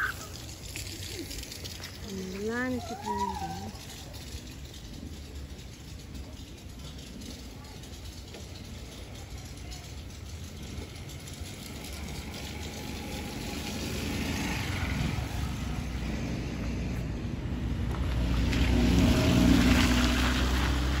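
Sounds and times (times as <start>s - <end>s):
tyres hissing through water: 0.0s - 4.4s
car engine passing: 10.4s - 21.0s.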